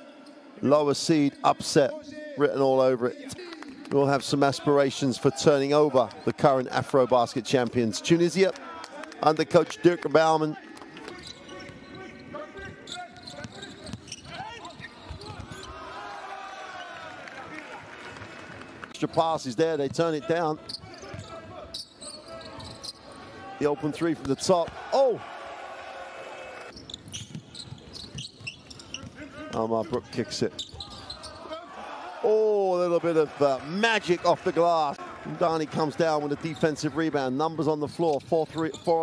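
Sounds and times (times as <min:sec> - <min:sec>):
sneakers squeaking on floor: 0:10.8 - 0:17.1, 0:20.6 - 0:23.2, 0:26.7 - 0:31.6, 0:37.7 - 0:39.0.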